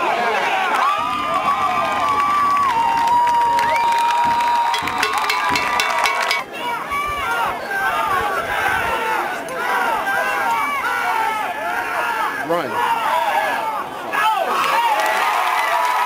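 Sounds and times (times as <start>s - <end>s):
crowd cheering and shouting: 0.0s - 16.0s
people clapping: 0.5s - 6.5s, 14.6s - 16.0s.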